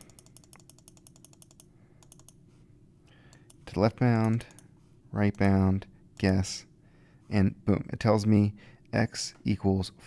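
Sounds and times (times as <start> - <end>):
rapid computer key clicking: 0.0 - 2.4, 4.2 - 4.7.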